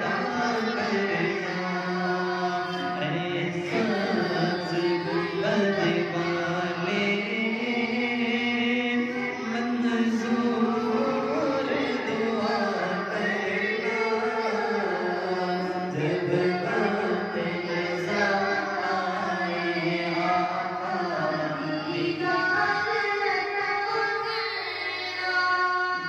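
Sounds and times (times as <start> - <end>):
young man singing: 0.0 - 26.0.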